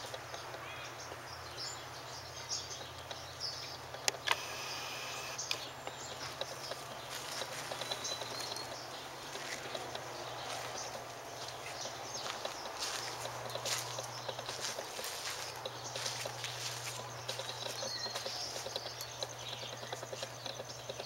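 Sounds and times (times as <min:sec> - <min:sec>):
footsteps on dry ground: 0:05.8 - 0:21.0.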